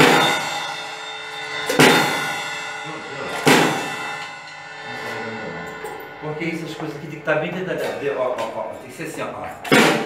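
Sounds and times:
cymbal crashes: 0.0s - 9.0s.

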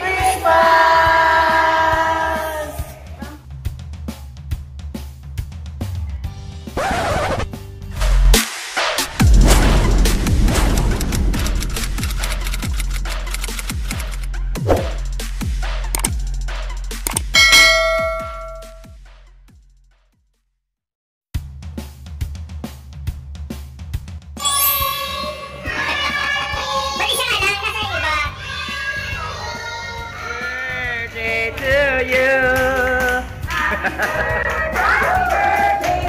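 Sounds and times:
quick clicks: 10.7s - 14.3s, 17.0s - 17.4s
electronic music with kick drum: 14.8s - 19.1s
bright notification ding: 17.1s - 18.9s, 24.4s - 25.3s.

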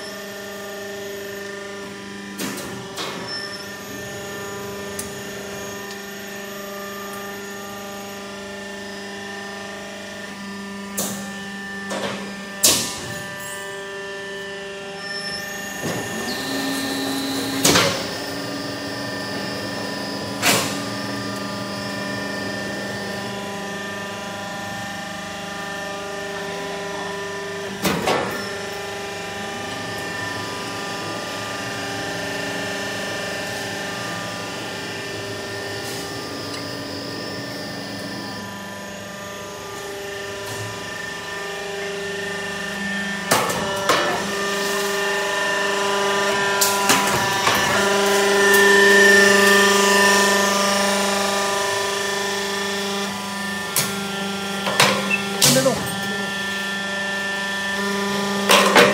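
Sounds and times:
roll forming machine hum: 0.1s - 58.9s.

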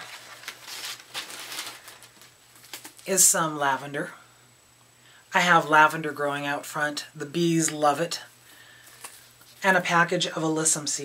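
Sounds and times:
paper wrapping rustling: 0.0s - 3.0s
plastic bag crinkling: 0.0s - 3.1s.

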